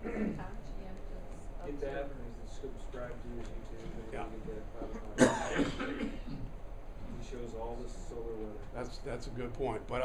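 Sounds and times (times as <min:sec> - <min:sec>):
person coughing: 0:00.0 - 0:00.4, 0:05.2 - 0:06.5.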